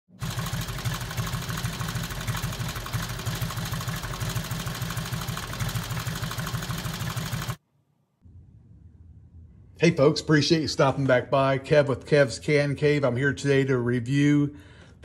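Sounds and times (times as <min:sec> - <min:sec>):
loud pulsing mechanical running: 0:00.1 - 0:07.6.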